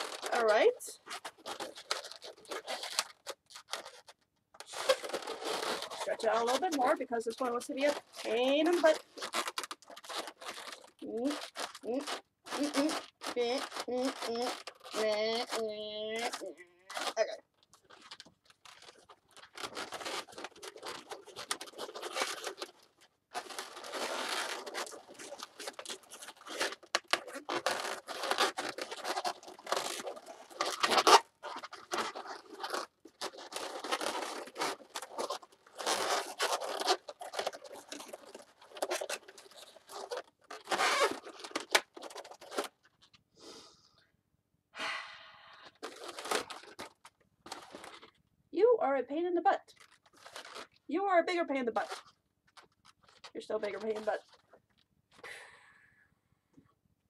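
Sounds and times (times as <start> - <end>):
balloons squeaking and rubbing: 0.0 - 43.7, 45.6 - 48.2, 49.7 - 54.6.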